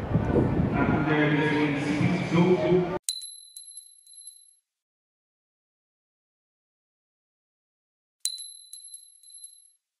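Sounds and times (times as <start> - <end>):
metal coin dropping and bouncing: 3.0 - 4.6, 8.2 - 9.8.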